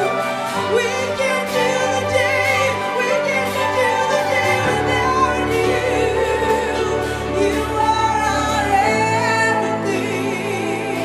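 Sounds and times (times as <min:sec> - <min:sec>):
instrumental accompaniment: 0:00.0 - 0:11.0
worship singing: 0:00.0 - 0:11.0.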